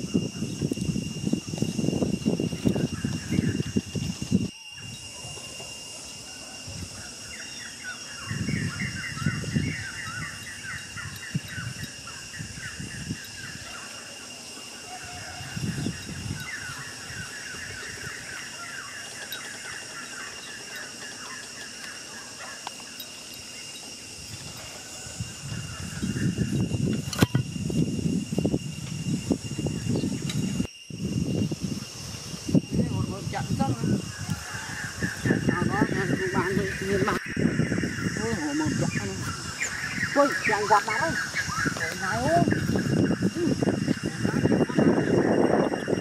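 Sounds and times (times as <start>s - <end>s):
insect drone: 0.0s - 46.0s
bird chirping trills: 1.2s - 5.2s, 7.0s - 27.7s, 33.6s - 46.0s.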